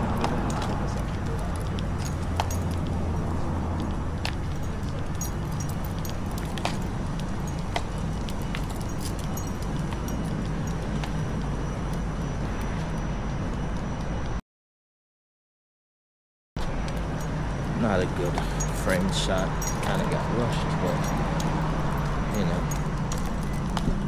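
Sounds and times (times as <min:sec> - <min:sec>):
city traffic rumble: 0:00.0 - 0:14.4, 0:16.6 - 0:24.0
light clicks and jingles: 0:00.1 - 0:13.0, 0:16.9 - 0:24.0.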